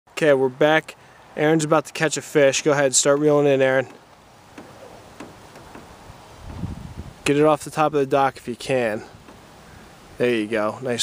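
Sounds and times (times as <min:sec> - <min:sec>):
soft steady hiss: 0:00.1 - 0:11.0.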